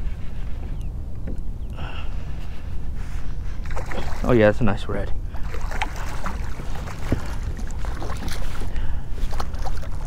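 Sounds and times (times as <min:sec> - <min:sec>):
wind rumbling on microphone: 0:00.0 - 0:10.0
fish splashing at water surface: 0:05.4 - 0:08.6.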